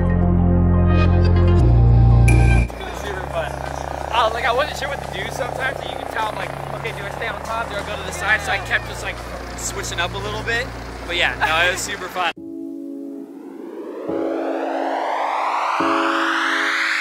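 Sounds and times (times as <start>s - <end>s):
people talking and laughing: 2.7s - 12.1s
loud music: 14.1s - 17.0s.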